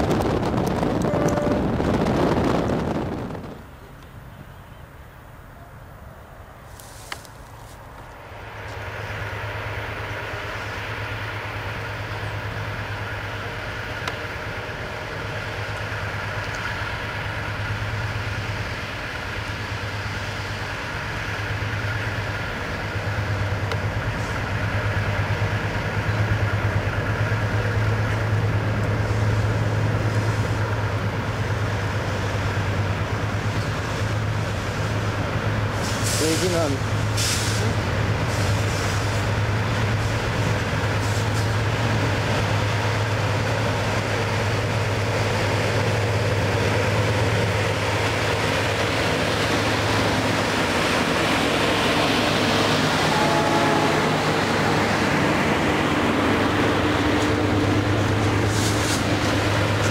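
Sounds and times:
diesel locomotive engine drone: 0.0s - 59.9s.

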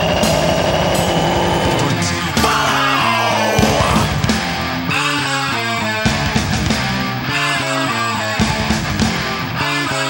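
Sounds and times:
fast heavy drumming: 0.0s - 4.7s
distorted guitar: 0.0s - 10.0s.

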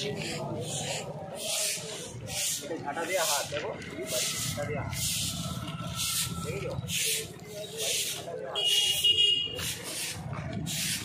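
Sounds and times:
brooms sweeping asphalt: 0.0s - 11.0s.

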